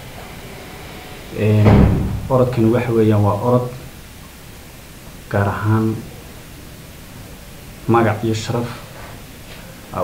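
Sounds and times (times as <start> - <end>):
steady background hiss: 0.0 - 10.0
man talking: 1.4 - 3.8, 7.9 - 8.8.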